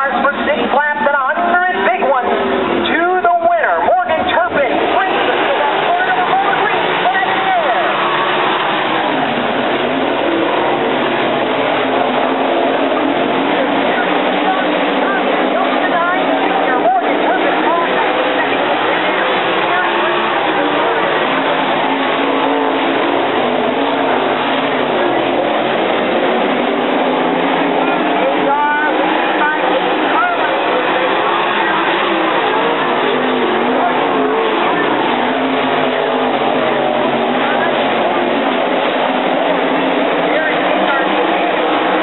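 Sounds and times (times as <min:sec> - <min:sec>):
crowd voices: 0:00.0 - 0:42.0
sprint car engines running: 0:00.0 - 0:42.0.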